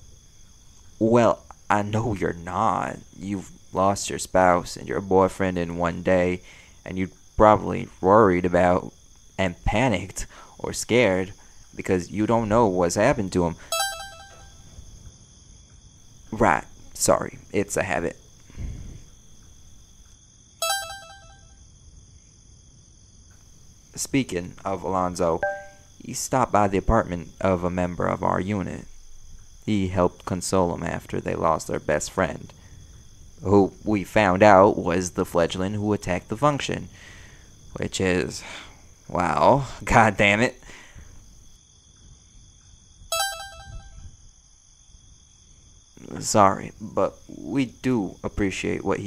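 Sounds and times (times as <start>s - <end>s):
crickets chirping: 0.0s - 49.0s
short electronic chime: 13.7s - 14.5s, 20.6s - 21.4s, 25.4s - 25.8s, 43.1s - 44.0s.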